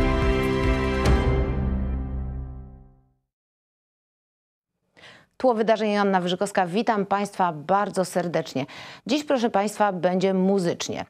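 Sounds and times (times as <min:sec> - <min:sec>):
theme music chord ringing: 0:00.0 - 0:03.1.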